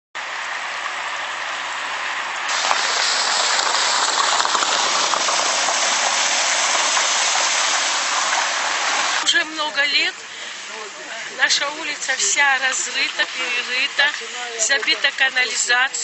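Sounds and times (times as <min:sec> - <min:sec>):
running water rushing: 0:00.2 - 0:16.0.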